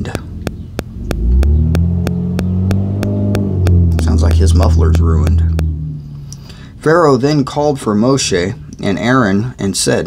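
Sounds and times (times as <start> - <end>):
vehicle exhaust droning: 0.0 - 9.2.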